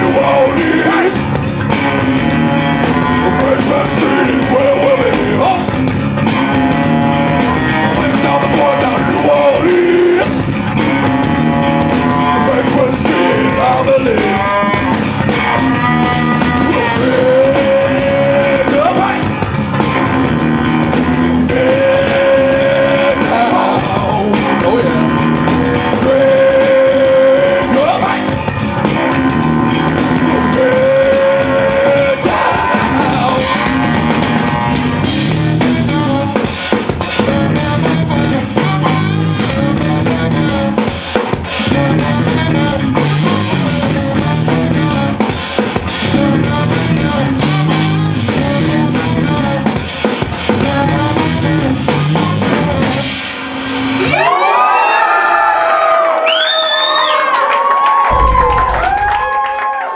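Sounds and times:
saxophone line with bending pitches: 0.0s - 36.4s
bass guitar riff: 0.0s - 54.7s, 58.1s - 59.9s
funk band playing: 0.0s - 56.2s, 57.7s - 59.9s
busy drums: 0.0s - 57.1s, 57.7s - 59.9s.

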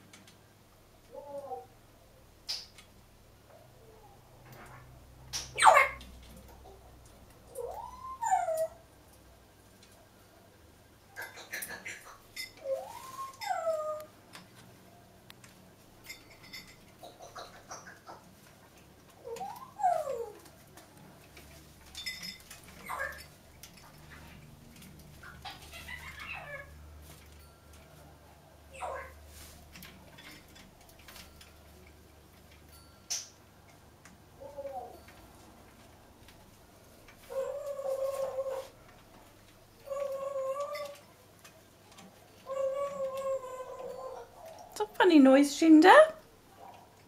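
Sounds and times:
parrot held calls: 5.4s - 6.8s, 7.5s - 8.8s, 11.1s - 14.1s, 19.2s - 20.5s, 22.8s - 23.4s, 25.2s - 26.8s, 28.7s - 29.2s, 37.2s - 38.8s, 39.8s - 41.2s
parrot whistles and chirps: 11.2s - 13.8s.

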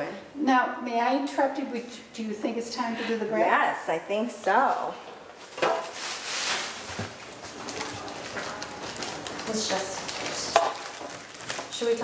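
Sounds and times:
bread rustling: 5.4s - 12.0s.

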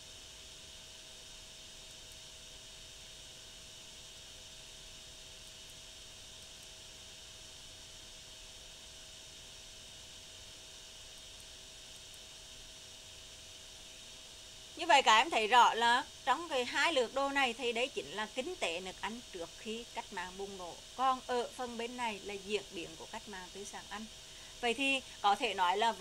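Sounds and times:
faint hum: 0.0s - 26.0s
faint steady hiss: 0.0s - 26.0s.

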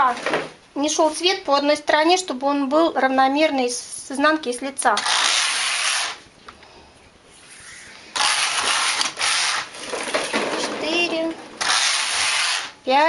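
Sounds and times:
knitting machine carriage rasping: 8.2s - 12.8s.

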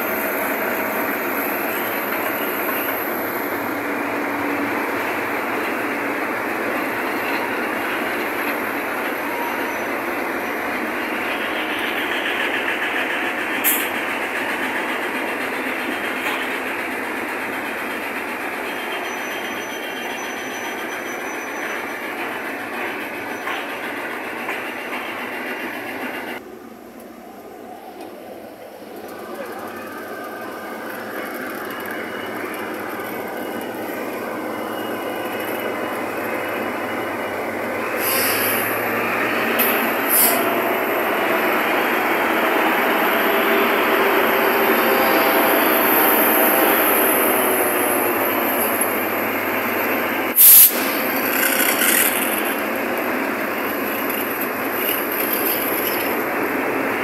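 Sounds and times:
wheels on rails: 0.0s - 26.4s, 27.0s - 57.0s
diesel locomotives rumbling past: 0.0s - 57.0s.

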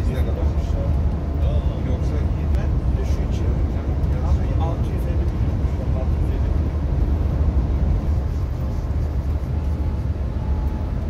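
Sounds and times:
coach engine and road drone: 0.0s - 11.0s.

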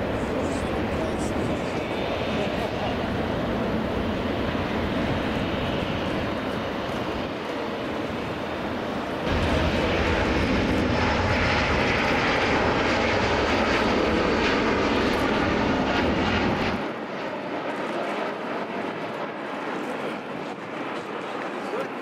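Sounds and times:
jet engines roaring: 0.0s - 22.0s.

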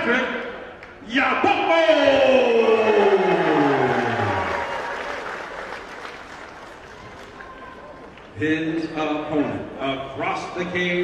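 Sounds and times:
crowd applauding and cheering: 2.6s - 8.3s.

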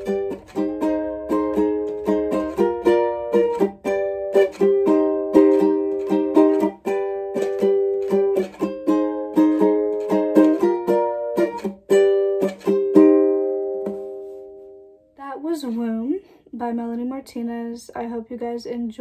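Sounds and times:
ukulele strumming chords: 0.0s - 15.1s.

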